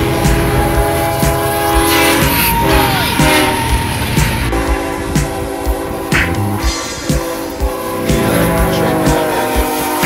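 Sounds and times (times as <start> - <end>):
freight train rumble: 0.0 - 10.0
locomotive air horn: 0.0 - 10.0.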